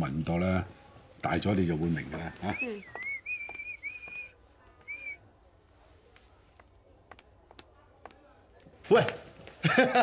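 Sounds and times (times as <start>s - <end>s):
person whistling: 2.4s - 5.2s.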